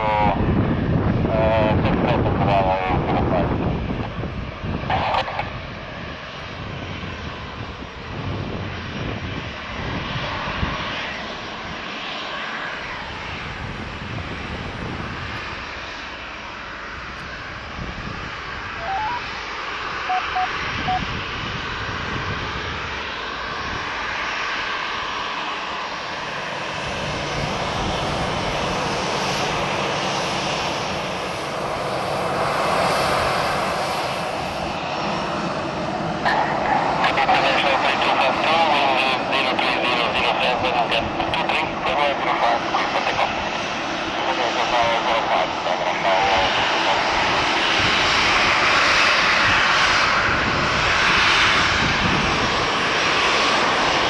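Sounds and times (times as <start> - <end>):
jet engine whine and rumble: 0.0 - 54.0
faint short beeps: 18.8 - 19.2, 20.1 - 21.1.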